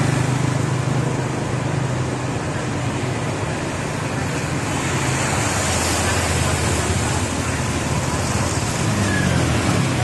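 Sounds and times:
car engines: 0.0s - 10.0s
water splashing from wheels: 0.0s - 10.0s.

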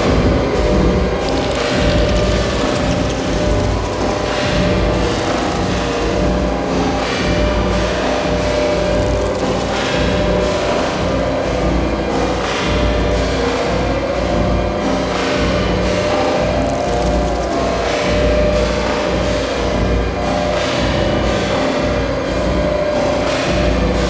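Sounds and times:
industrial electronic music: 0.0s - 24.0s.

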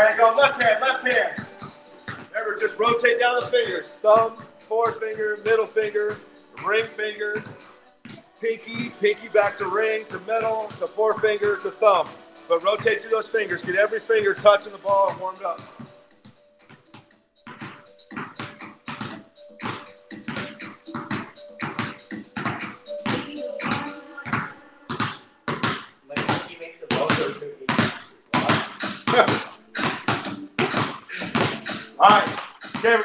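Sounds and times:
basketballs bouncing on concrete: 0.0s - 33.0s.

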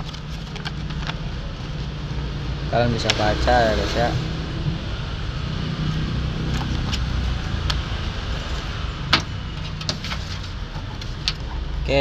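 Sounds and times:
paper sheet rustling: 0.0s - 1.9s, 9.6s - 11.3s
low motor rumble: 0.0s - 12.0s.

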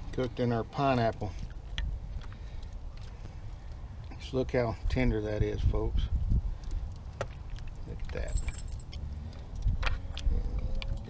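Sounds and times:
wind buffeting microphone: 1.1s - 11.0s.

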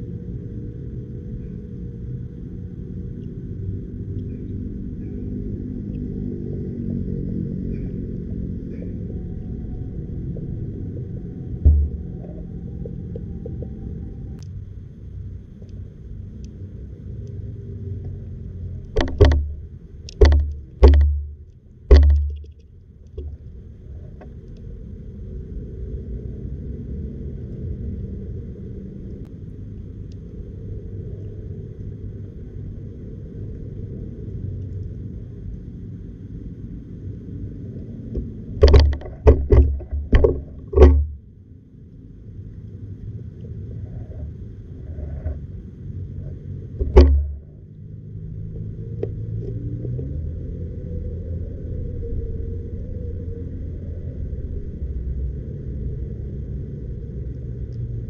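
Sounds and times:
low underwater rumble: 6.6s - 29.3s, 37.1s - 58.0s
dull low thump: 10.3s - 13.8s, 19.0s - 22.6s, 38.2s - 41.2s, 46.8s - 47.6s.

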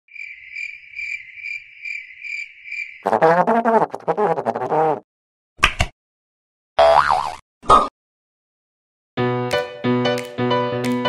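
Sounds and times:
wobbling cartoon sound effect: 3.1s - 5.0s.

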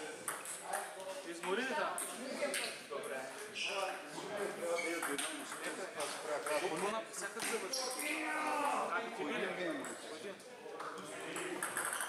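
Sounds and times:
people talking: 0.0s - 12.0s
ping pong ball clicks: 11.4s - 12.0s.

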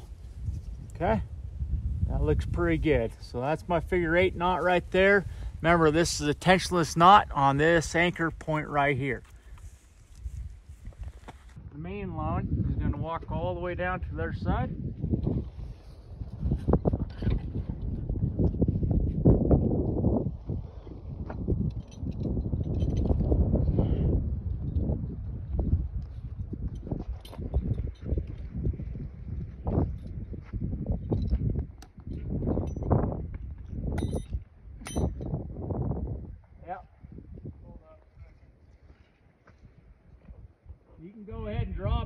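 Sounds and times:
wind noise on microphone: 0.0s - 42.0s
footsteps: 7.7s - 11.6s
rustling through brush: 8.9s - 11.6s.

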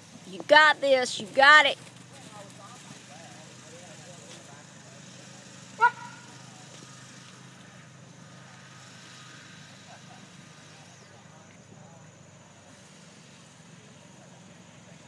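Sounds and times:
murmur of distant voices: 0.0s - 15.0s
dog bark: 5.8s - 6.3s.

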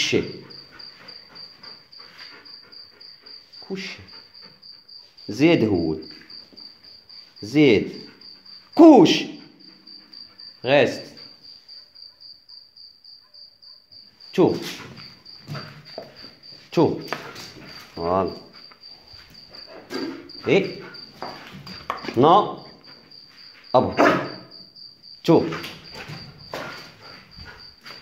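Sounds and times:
cricket chirping: 0.0s - 28.0s
man speaking: 3.6s - 4.1s, 5.3s - 6.0s, 7.4s - 8.0s, 8.8s - 9.4s, 10.6s - 11.2s, 14.4s - 14.8s, 16.7s - 17.1s, 18.0s - 18.5s, 20.4s - 20.9s, 22.1s - 22.7s, 23.8s - 24.2s, 25.2s - 25.6s.

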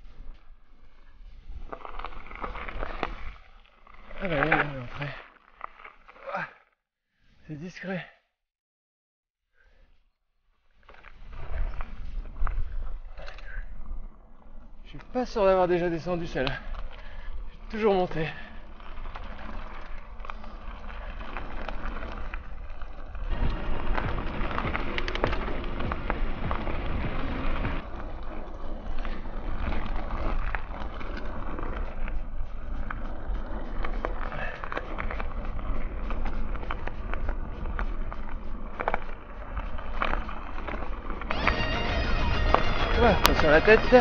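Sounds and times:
bike rattles and clicks: 0.0s - 6.6s, 10.8s - 44.0s
bike tyres rolling on dirt: 0.0s - 6.6s, 10.7s - 44.0s
pitched sound: 41.3s - 44.0s.

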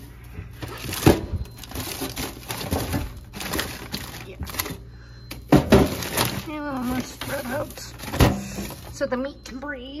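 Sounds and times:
plastic wrappers crinkling: 0.0s - 9.2s
frozen packs knocking together: 0.5s - 9.0s.

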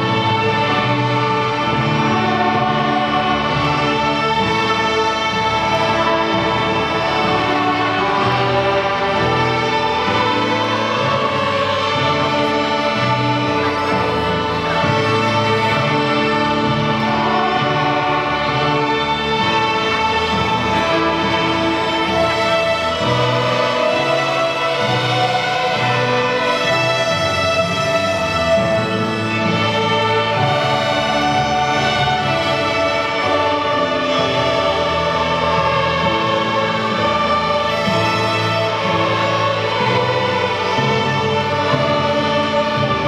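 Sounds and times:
string orchestra playing sustained chords: 0.0s - 43.0s.

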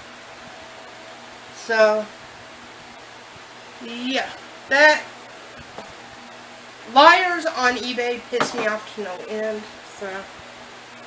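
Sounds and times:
faint hum: 0.0s - 11.0s
woman speaking: 1.6s - 2.2s, 3.8s - 5.1s, 6.9s - 10.3s.

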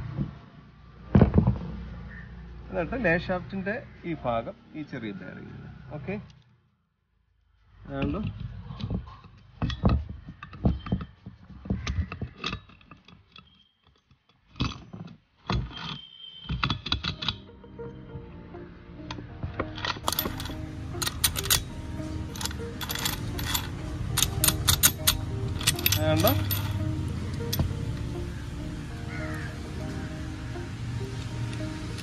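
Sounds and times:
background music: 17.1s - 32.0s
metal gears clinking: 19.7s - 26.8s, 27.4s - 27.7s.

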